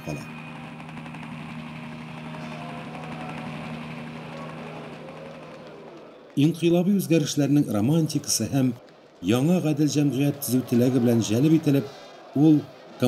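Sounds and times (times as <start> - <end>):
mechanical drone with low hum: 0.0 - 6.0.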